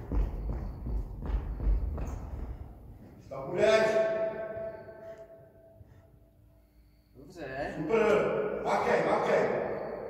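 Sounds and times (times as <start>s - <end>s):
bell-like ringing tone: 3.6s - 5.8s, 8.8s - 10.0s.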